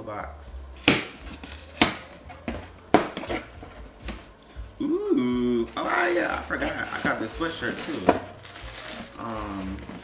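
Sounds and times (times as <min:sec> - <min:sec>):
cardboard box ripping open: 0:06.7 - 0:10.0.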